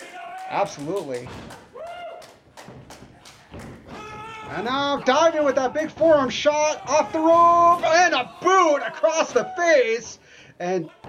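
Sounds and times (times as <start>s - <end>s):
running footsteps on boards: 0.5s - 10.4s.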